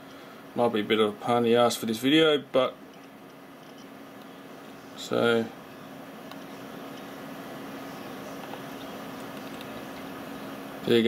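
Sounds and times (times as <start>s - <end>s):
low steady hum: 0.0s - 11.0s
steady background hiss: 0.0s - 11.0s.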